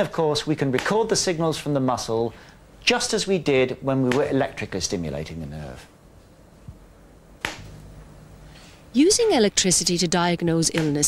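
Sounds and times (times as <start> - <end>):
faint low hum: 0.0 - 11.0
sharp click: 7.4 - 7.7.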